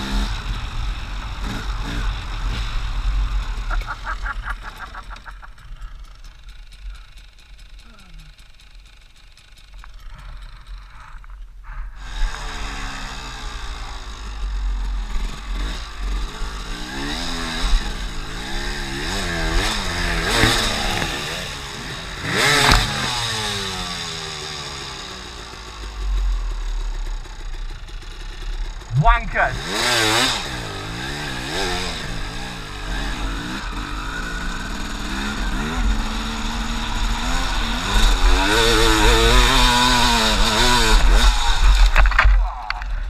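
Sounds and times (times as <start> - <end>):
dirt bike engine revving: 0.0 - 43.0.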